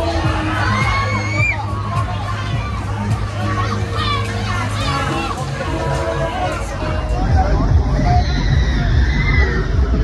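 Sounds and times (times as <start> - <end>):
fairground music with bass beat: 0.0 - 10.0
riders screaming and shouting: 0.0 - 10.0.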